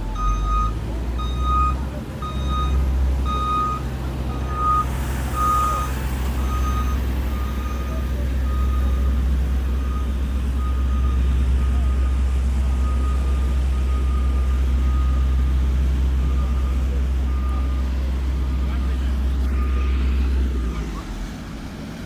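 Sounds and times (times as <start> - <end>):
diesel engine rumble: 0.0 - 22.0
reversing alarm beeping: 0.1 - 21.0.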